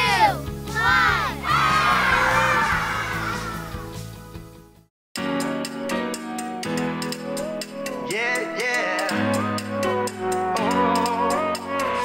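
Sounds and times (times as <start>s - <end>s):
children cheering and shouting: 0.0s - 4.0s
background music: 0.0s - 12.0s.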